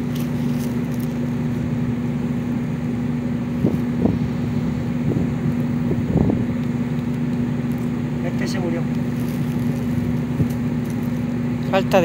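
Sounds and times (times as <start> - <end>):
low motor hum: 0.0 - 12.0.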